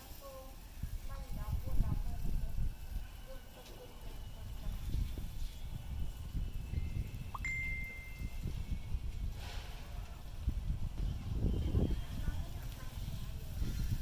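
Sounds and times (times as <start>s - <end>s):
wind buffeting microphone: 0.5s - 14.0s.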